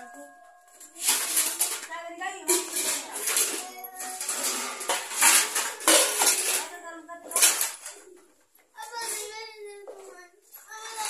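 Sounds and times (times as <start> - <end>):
child talking: 0.0 - 5.0, 5.9 - 11.0
steel dishes clinking and scraping: 0.7 - 8.1, 10.7 - 11.0.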